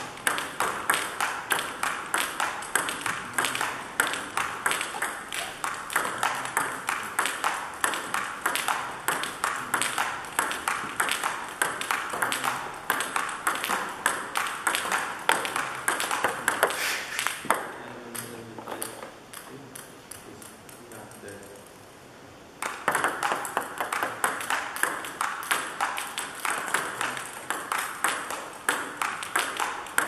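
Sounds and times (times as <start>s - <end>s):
ping-pong ball clicking: 0.0s - 21.7s, 22.6s - 30.0s.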